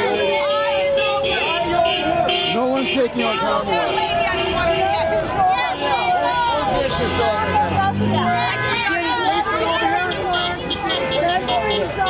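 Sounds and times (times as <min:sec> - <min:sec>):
people talking over one another: 0:00.0 - 0:12.0
road traffic: 0:00.0 - 0:12.0.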